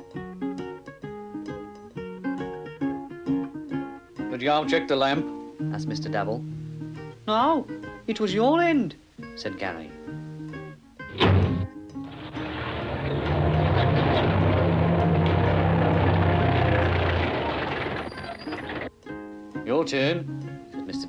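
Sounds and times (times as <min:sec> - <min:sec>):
sharp bang: 0:11.1 - 0:12.6
van engine running: 0:12.1 - 0:18.9.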